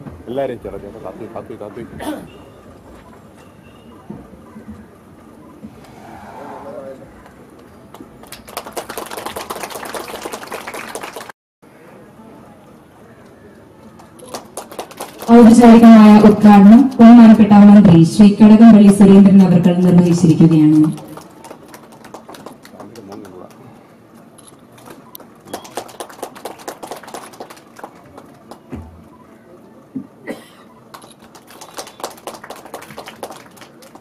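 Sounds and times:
people clapping: 0:07.2 - 0:11.4, 0:13.9 - 0:17.3, 0:19.9 - 0:23.7, 0:24.8 - 0:28.7, 0:30.9 - 0:34.0.

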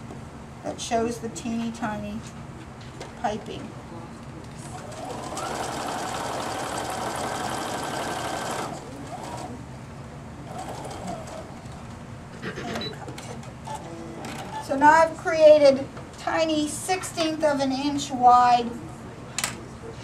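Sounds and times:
sewing machine stitching: 0:04.7 - 0:09.6, 0:10.5 - 0:11.5.

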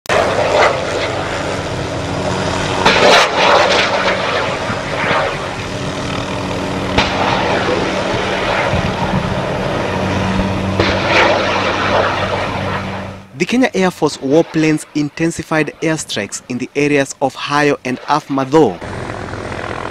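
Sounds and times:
helicopter flying low: 0:00.1 - 0:19.9.

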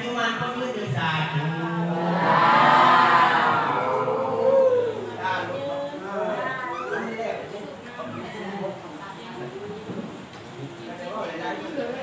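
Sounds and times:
group calling out in unison: 0:02.0 - 0:05.2.

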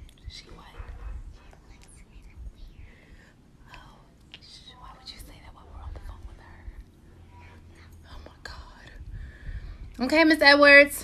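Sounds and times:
quiet whispering voices: 0:00.0 - 0:10.2.

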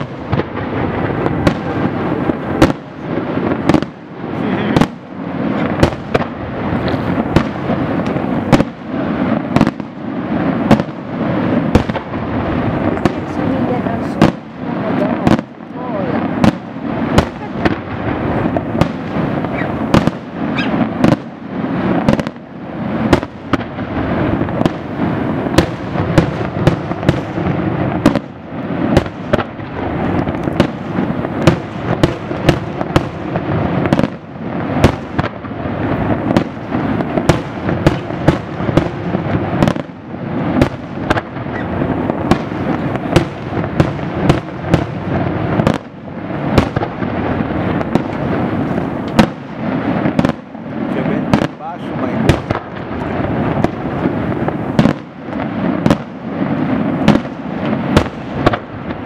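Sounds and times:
crackling rumble: 0:00.0 - 0:59.0
firework shells bursting: 0:00.0 - 0:59.0.

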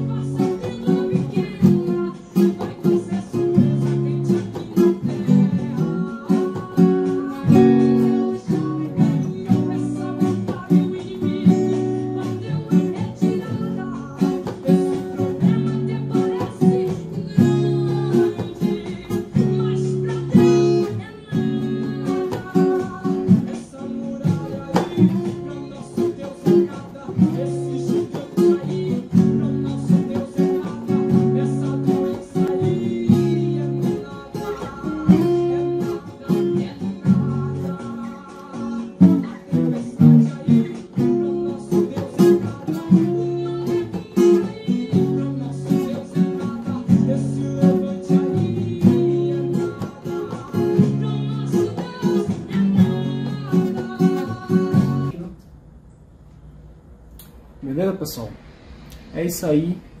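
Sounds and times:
acoustic guitar strummed: 0:00.0 - 0:55.2.

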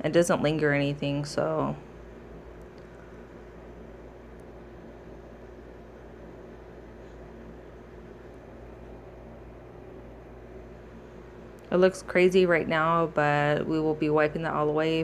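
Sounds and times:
background hiss and hum: 0:00.0 - 0:15.0.

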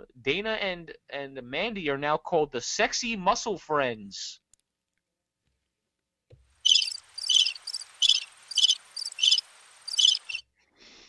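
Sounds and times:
crickets chirping: 0:06.6 - 0:10.4.

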